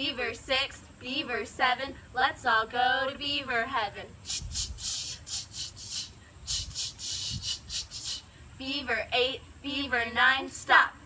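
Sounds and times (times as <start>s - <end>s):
scratchy hissing noises: 0.2s - 10.7s.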